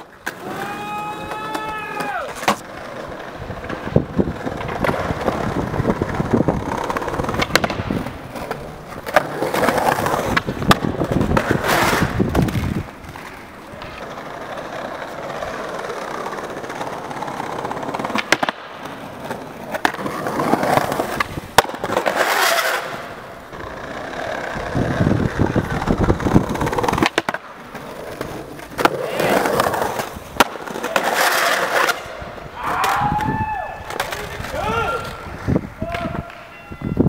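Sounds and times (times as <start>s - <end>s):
skateboard clacking on ground: 0.0s - 37.0s
skateboard wheels rolling: 0.0s - 37.0s.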